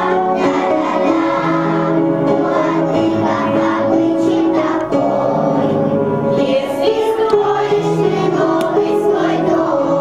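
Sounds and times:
musical accompaniment: 0.0 - 10.0
young children singing: 0.0 - 10.0.

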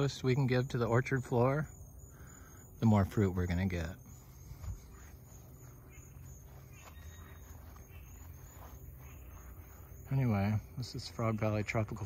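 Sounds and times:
low background noise: 0.0 - 12.0
rustling through grass and plants: 2.8 - 12.0.

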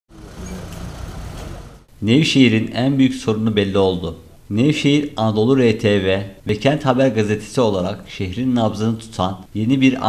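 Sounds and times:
road noise: 0.1 - 1.9
street traffic engines humming: 0.1 - 1.9.

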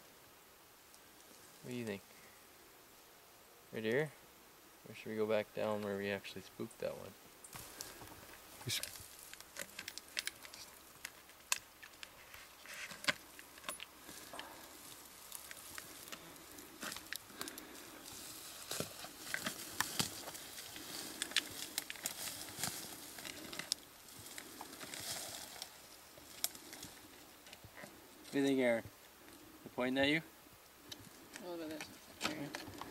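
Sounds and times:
brush against bark: 7.5 - 28.7
handling noise clicks and rustling: 8.6 - 14.6.

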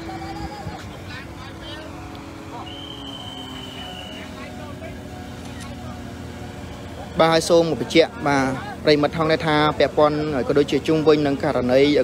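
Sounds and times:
people talking: 0.0 - 12.0
truck engine running: 0.0 - 12.0
faint high whine: 1.4 - 6.1.

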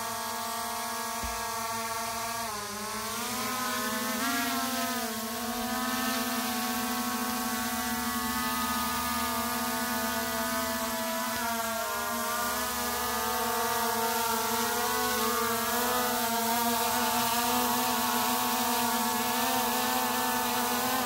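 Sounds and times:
drone propellers whining: 0.0 - 21.0.

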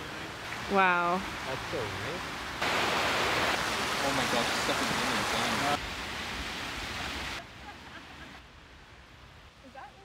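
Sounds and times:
waterfall rushing: 0.0 - 8.3.

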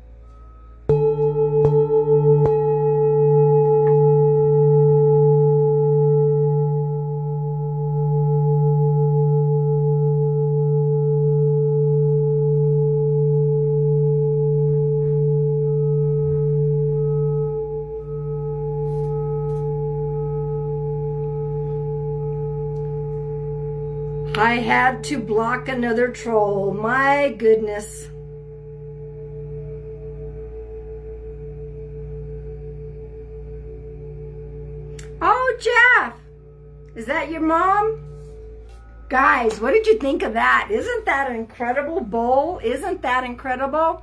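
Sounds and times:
singing bowl struck and ringing: 0.0 - 42.9.

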